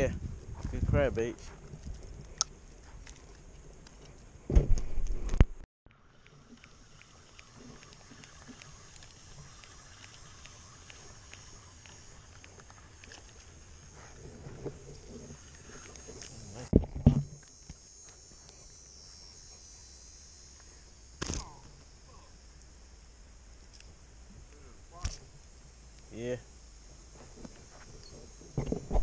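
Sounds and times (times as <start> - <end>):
faint insect buzz: 0.0 - 29.0.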